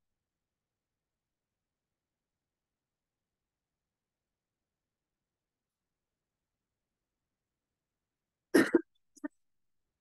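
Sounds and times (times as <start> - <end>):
person coughing: 8.6 - 8.9.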